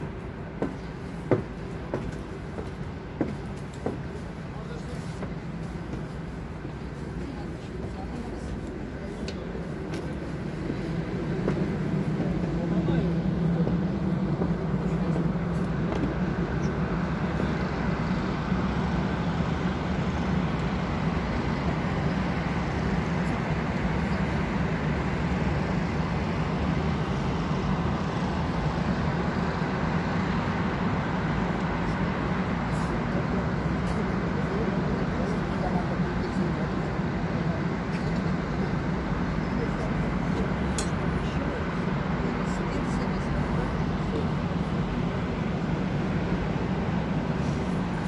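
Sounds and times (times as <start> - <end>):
city traffic drone: 0.0 - 48.0.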